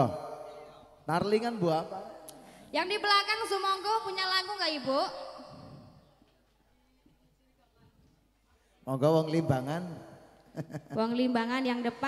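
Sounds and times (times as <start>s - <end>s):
man speaking over pa system: 8.9s - 10.1s.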